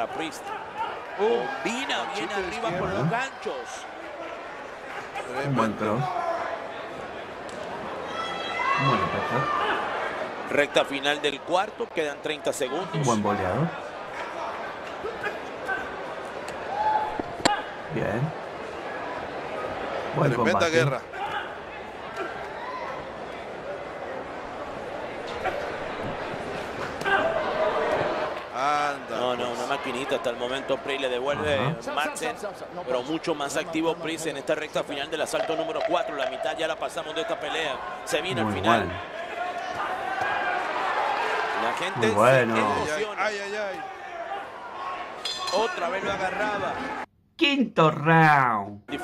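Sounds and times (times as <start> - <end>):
crowd noise and shouts: 0.0 - 47.1.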